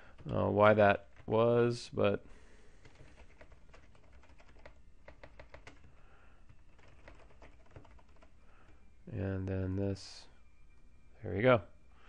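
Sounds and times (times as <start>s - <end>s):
computer keyboard typing: 2.8s - 8.8s.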